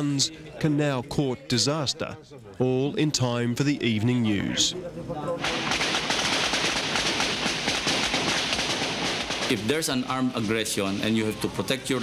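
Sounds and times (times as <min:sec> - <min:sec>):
rapid gunfire: 0:05.4 - 0:11.2.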